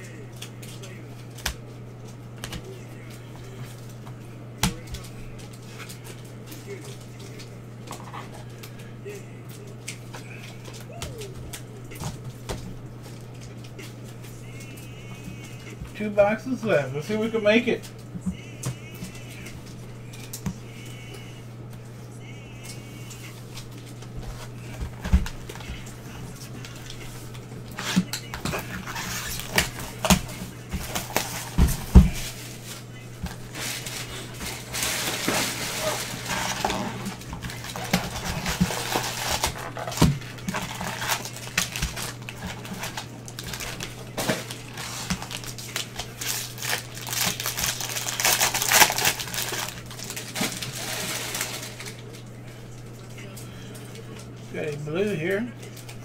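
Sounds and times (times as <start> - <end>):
foil wrappers crinkling and tearing: 0.0 - 21.9, 22.5 - 52.4
steady low hum: 0.0 - 56.0.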